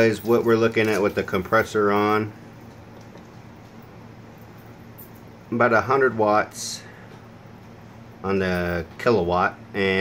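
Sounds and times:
refrigerator compressor humming: 0.0s - 10.0s.

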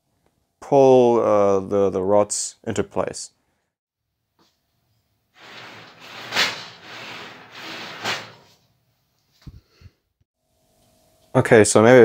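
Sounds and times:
table sliding along guide rods: 5.4s - 8.6s.

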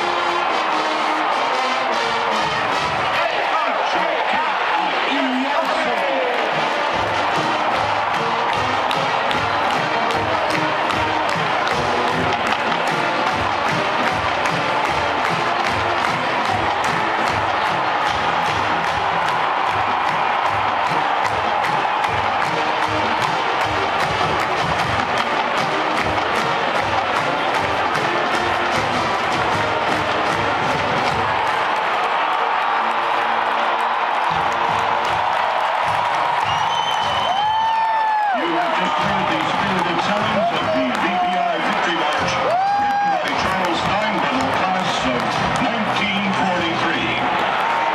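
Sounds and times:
marching band playing a march: 0.0s - 3.4s, 6.4s - 37.5s
crowd cheering: 0.0s - 47.9s.

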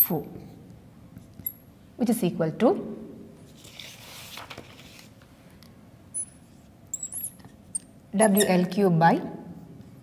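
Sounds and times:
marker squeaking on board: 6.2s - 8.6s.

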